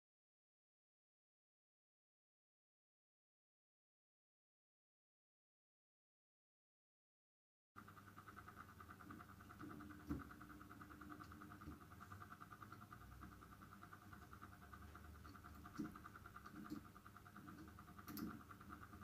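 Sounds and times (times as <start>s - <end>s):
faint steady hum: 7.8s - 19.0s.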